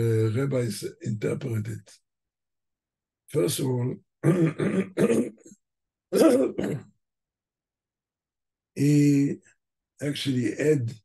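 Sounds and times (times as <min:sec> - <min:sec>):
man speaking: 0:00.0 - 0:02.0, 0:03.3 - 0:05.2, 0:06.2 - 0:06.8, 0:08.8 - 0:09.4, 0:10.0 - 0:11.0.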